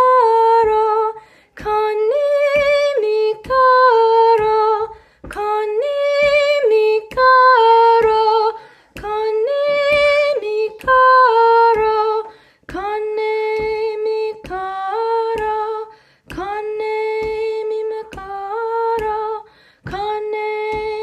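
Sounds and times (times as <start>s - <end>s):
woman singing unaccompanied: 0.0s - 21.0s
woman breathing: 1.2s - 1.6s, 5.0s - 5.3s, 8.6s - 9.0s, 12.3s - 12.7s, 15.9s - 16.3s, 19.4s - 19.9s.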